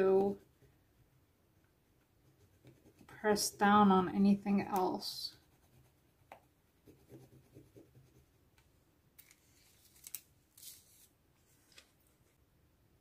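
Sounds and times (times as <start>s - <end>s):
scratchy rubbing on paper: 2.2s - 3.8s, 5.0s - 8.4s.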